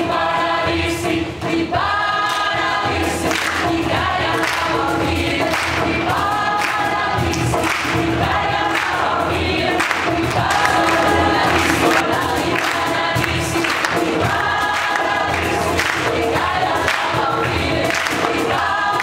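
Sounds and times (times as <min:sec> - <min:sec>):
mixed choir singing folk song: 0:00.0 - 0:19.0.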